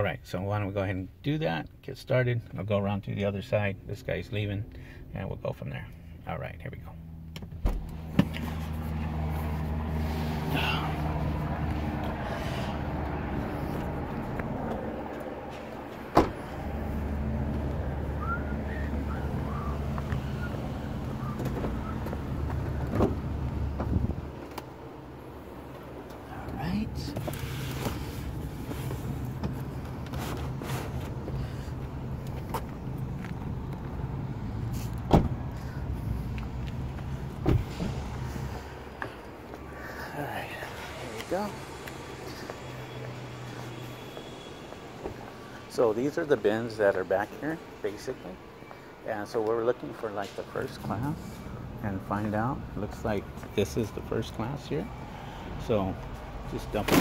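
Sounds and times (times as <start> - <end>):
vehicle engine rumbling: 1.0 - 57.0
car door clunks: 16.1 - 16.4, 35.0 - 35.4, 37.4 - 37.9.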